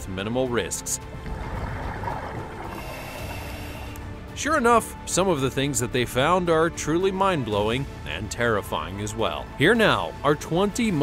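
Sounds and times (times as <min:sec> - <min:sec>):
rushing water: 0:00.0 - 0:04.4
faint background music: 0:00.0 - 0:11.0.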